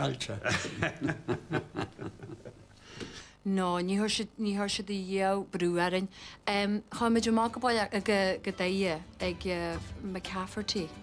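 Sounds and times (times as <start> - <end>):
man speaking: 0.0 - 0.8
man chuckling: 0.4 - 2.8.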